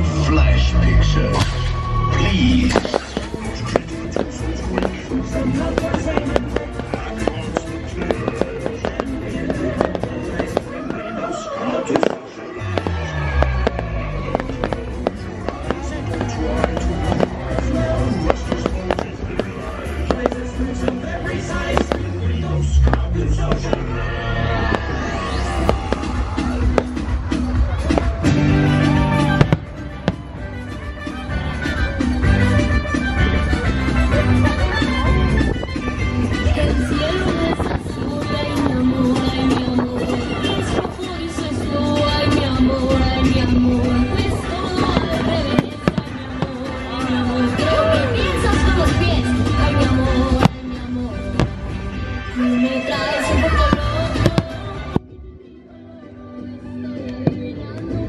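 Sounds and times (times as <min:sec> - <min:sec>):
loud show soundtrack music: 0:00.0 - 0:55.4
fireworks bangs: 0:01.4 - 0:33.0, 0:34.5 - 0:52.3, 0:52.9 - 0:55.1.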